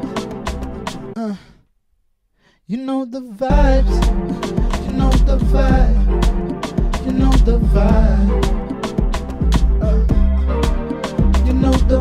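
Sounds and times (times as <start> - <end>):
looped music: 0.0 - 1.2, 3.5 - 12.0.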